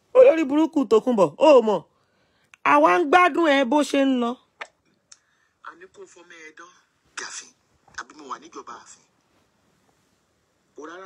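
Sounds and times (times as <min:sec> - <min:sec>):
person speaking: 0:00.0 - 0:01.9, 0:02.6 - 0:04.5.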